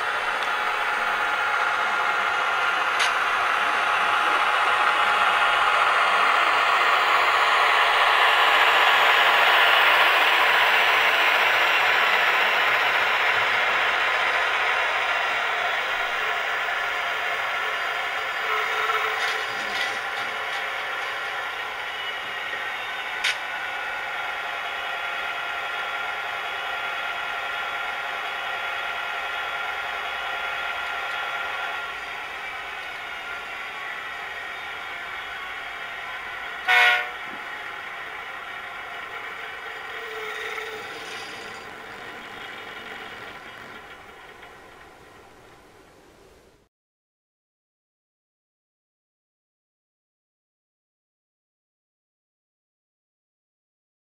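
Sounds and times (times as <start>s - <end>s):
model locomotive diesel engine sound: 0.0s - 46.7s.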